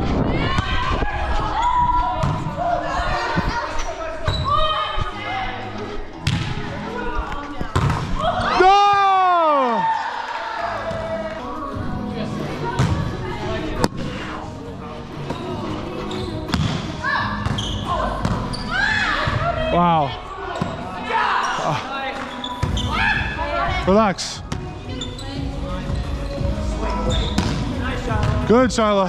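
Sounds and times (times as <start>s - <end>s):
players' voices: 0.0s - 29.0s
shoes squeaking on wood: 15.2s - 16.6s, 17.4s - 18.9s, 20.5s - 23.2s, 24.9s - 27.7s.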